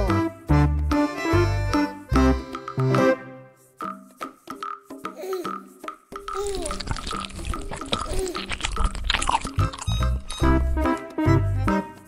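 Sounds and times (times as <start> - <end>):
upbeat music with thumping beat: 0.0 - 12.0.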